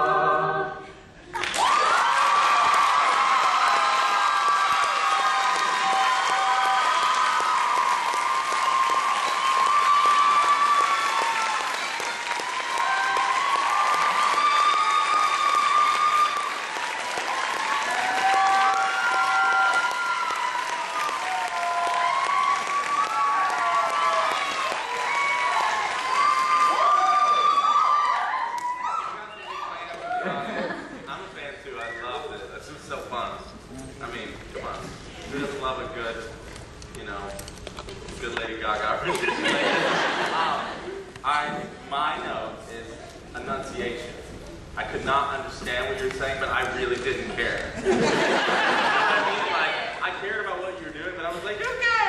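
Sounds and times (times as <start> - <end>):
audience applauding and cheering: 1.3 - 30.5, 46.5 - 50.2
whoops and shouts: 1.4 - 16.6, 17.5 - 30.4.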